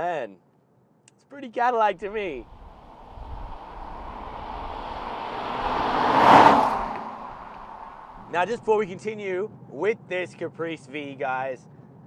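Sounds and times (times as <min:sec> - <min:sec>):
car driving past: 0:02.3 - 0:08.9.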